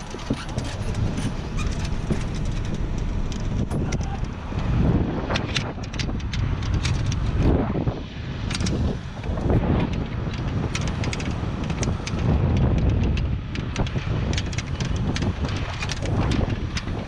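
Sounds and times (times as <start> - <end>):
wind buffeting microphone: 0.0 - 17.0
clicks from gear being handled: 5.3 - 7.5, 8.4 - 17.0.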